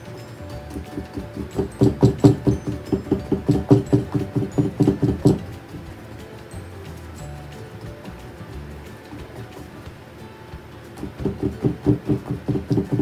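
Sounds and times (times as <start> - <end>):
soft background music: 0.0 - 13.0
paintbrush tapping on canvas: 0.6 - 6.1, 10.6 - 13.0.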